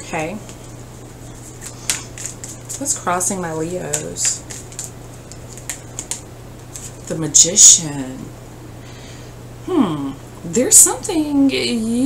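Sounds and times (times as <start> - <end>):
cards clicking: 1.6 - 2.8, 3.8 - 7.1.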